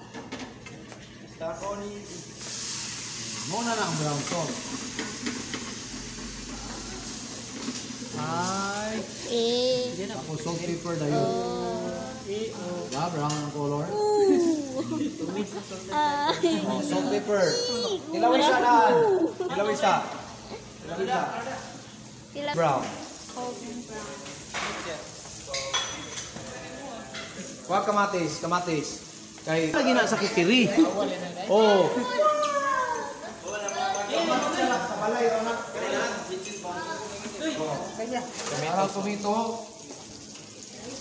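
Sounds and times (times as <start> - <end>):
food frying in a pan: 1.7 - 16.0, 20.8 - 41.0.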